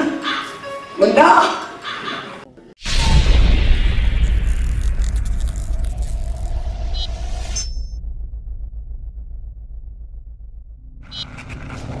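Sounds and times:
bright whoosh: 0:02.8 - 0:08.1
low pulsing rumble: 0:03.0 - 0:12.0.

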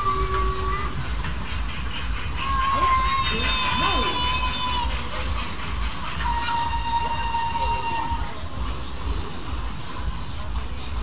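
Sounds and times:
low steady rumble: 0:00.0 - 0:11.0
held high tone: 0:06.2 - 0:08.4.

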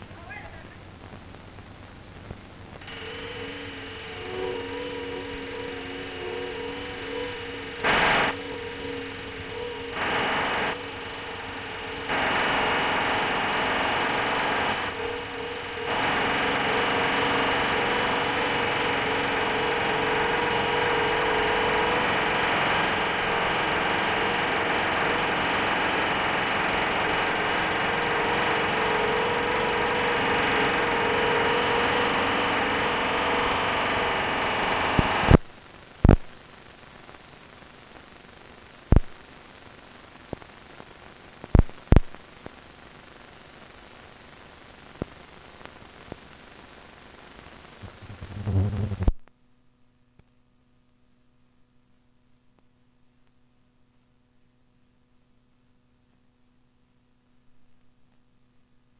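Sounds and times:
steady hiss and hum: 0:00.0 - 0:58.9.

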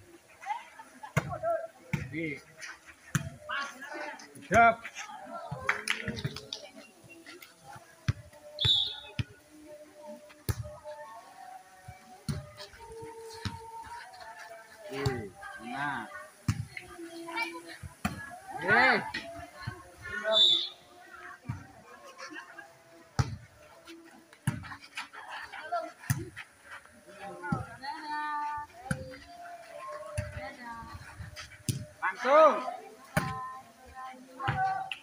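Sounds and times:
faint background music: 0:00.0 - 0:35.0.

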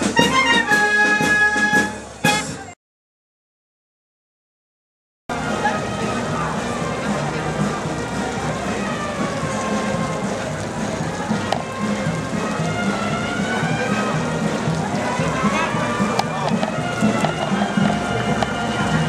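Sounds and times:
crowd talking: 0:00.0 - 0:02.8, 0:05.3 - 0:19.0
music: 0:00.0 - 0:02.8, 0:05.3 - 0:19.0.

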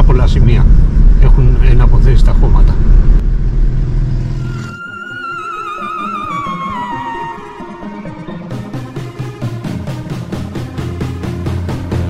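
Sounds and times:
car engine and road rumble: 0:00.0 - 0:04.8
music: 0:04.4 - 0:12.0.

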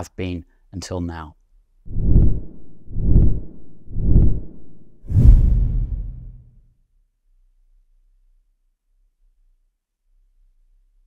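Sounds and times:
deep booming sound effect hits: 0:05.1 - 0:06.5.

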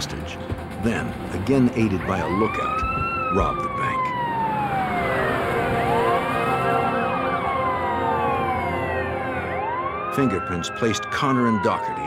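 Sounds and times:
police sirens wailing: 0:00.0 - 0:12.0.

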